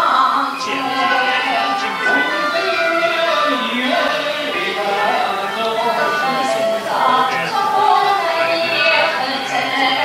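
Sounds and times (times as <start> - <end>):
opera singing: 0.0 - 10.0
instrumental accompaniment: 0.2 - 10.0.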